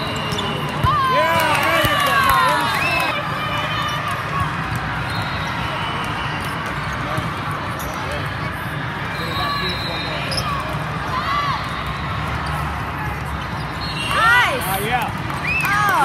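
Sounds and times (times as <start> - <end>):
sneakers squeaking on court: 0.0 - 1.0, 9.2 - 10.9
crowd chatter: 0.0 - 16.0.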